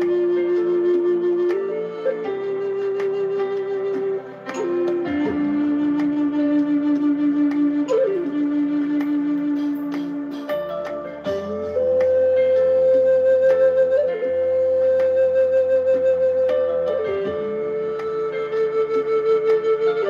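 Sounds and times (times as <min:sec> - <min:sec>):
wooden flute melody: 0:00.0 - 0:20.0.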